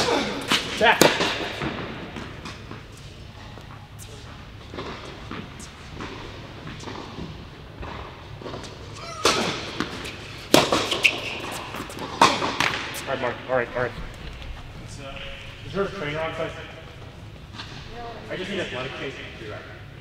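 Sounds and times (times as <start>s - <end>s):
tennis ball struck by rackets: 9.2s - 13.1s.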